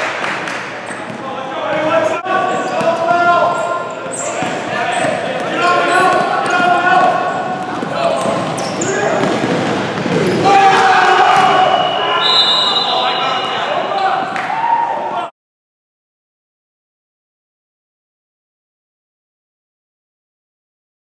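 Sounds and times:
players' voices and shouts: 0:00.9 - 0:15.3.

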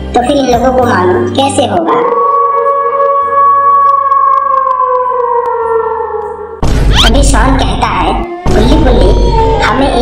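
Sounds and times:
eerie synth tone sinking in pitch: 0:01.8 - 0:06.6, 0:08.0 - 0:10.0.

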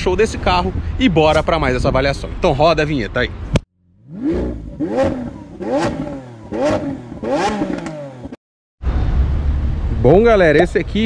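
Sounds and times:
engine revving in throttle blips: 0:03.8 - 0:08.4.

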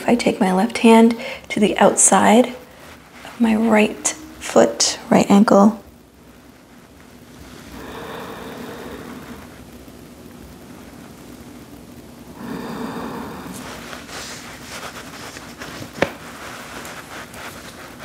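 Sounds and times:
rustling on yoga mat: 0:00.0 - 0:05.6, 0:13.4 - 0:18.0
person breathing: 0:01.2 - 0:01.5, 0:07.6 - 0:09.6, 0:12.4 - 0:14.6.

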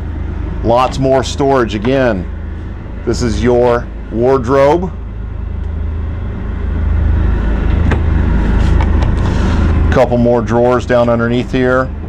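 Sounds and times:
machine rumbling: 0:00.0 - 0:12.0.

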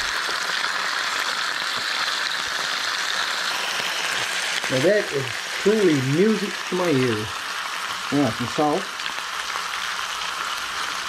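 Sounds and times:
meat sizzling in hot oil: 0:00.0 - 0:11.0.

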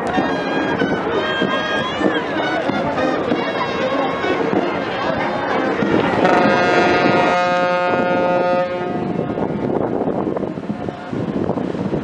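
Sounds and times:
ship's horn blast: 0:00.0 - 0:09.7.

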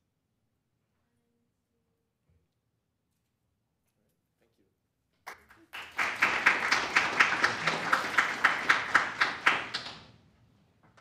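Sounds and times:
close clapping: 0:05.2 - 0:10.2
group applauding: 0:05.2 - 0:10.3.

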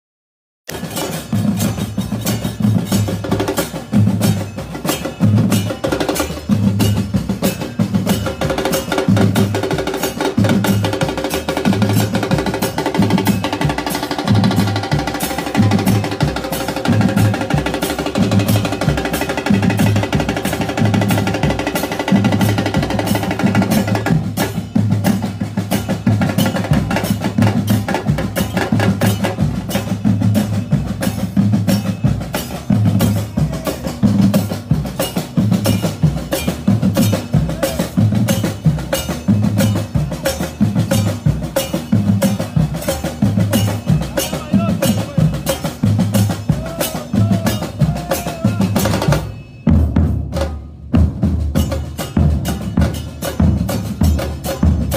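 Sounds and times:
bass and snare drums playing: 0:00.7 - 0:54.9.

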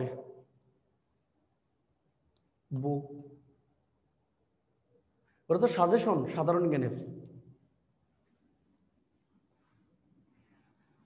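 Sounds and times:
faint small clicks: 0:00.5 - 0:01.4, 0:02.2 - 0:03.4, 0:07.2 - 0:09.3
man speaking: 0:05.5 - 0:07.2.

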